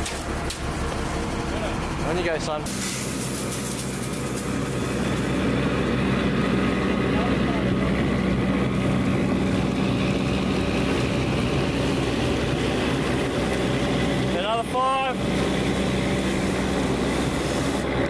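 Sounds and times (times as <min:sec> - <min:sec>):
fire pump engine drone: 0:00.0 - 0:18.0
water spraying from hose nozzle: 0:02.7 - 0:05.4, 0:15.1 - 0:17.9.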